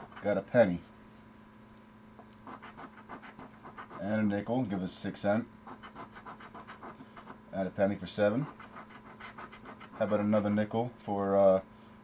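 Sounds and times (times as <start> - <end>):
coin scratching lottery ticket: 0.0 - 0.4, 2.4 - 4.1, 5.7 - 7.4, 8.3 - 10.5.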